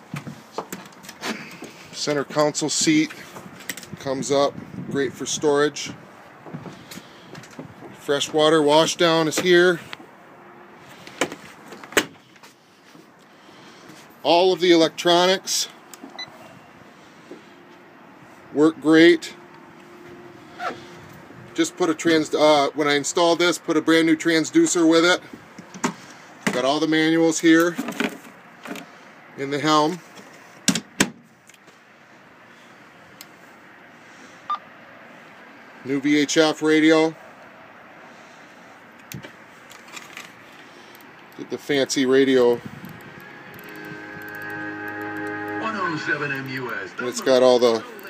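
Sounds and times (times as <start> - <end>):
faint steady hum: 42.6 - 48.0
short electronic beep: 43.1 - 47.2.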